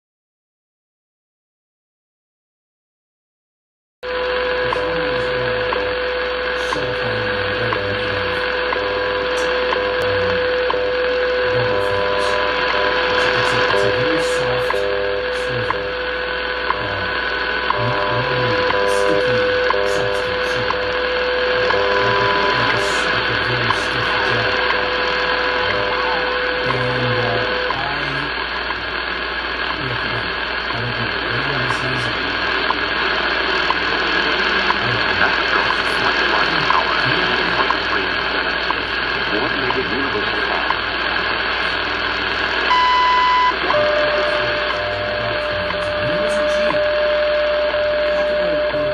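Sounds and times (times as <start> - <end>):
radio static hiss: 4.0 - 48.9
steady radio tone: 4.0 - 48.9
low pulsing time code: 4.1 - 48.9
static clicks: 4.1 - 48.9.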